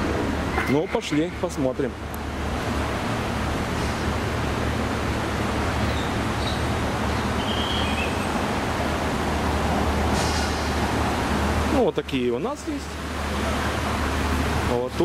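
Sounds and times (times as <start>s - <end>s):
traffic roar: 0.0s - 15.0s.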